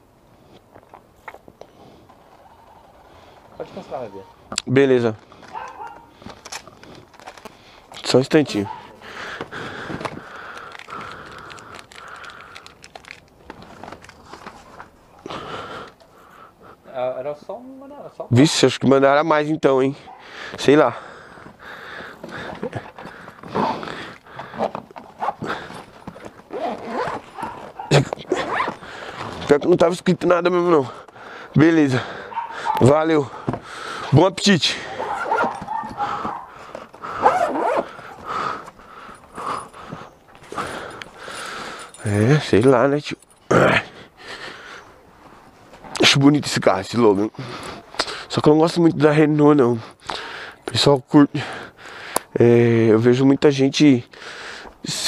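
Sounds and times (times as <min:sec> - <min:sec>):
clothing and bag rustling: 0:05.2 - 0:15.2, 0:21.3 - 0:29.8, 0:34.9 - 0:43.5
zipper being pulled shut: 0:26.5 - 0:29.5, 0:37.1 - 0:38.0.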